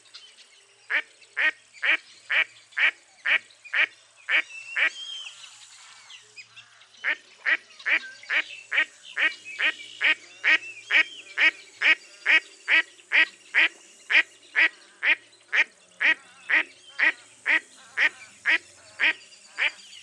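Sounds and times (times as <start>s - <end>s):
duck quacking: 7.0s - 19.8s.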